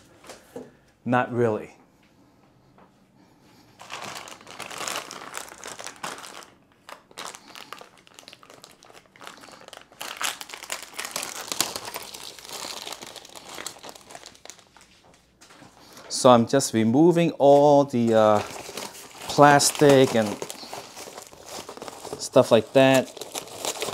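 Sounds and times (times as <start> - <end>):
plastic wrap crinkling: 3.7 - 16.2, 17.4 - 23.9.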